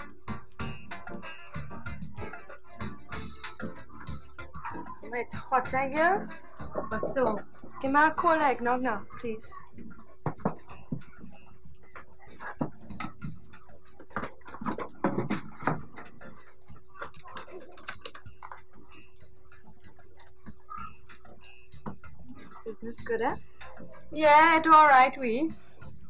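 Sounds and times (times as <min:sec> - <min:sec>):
small items clicking on a counter: 0:17.0 - 0:18.7.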